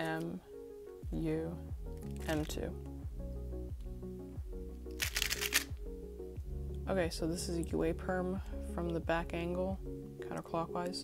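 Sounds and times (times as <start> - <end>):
background music with beat: 0.0 - 11.0
speed cube clicking turns: 5.0 - 5.7.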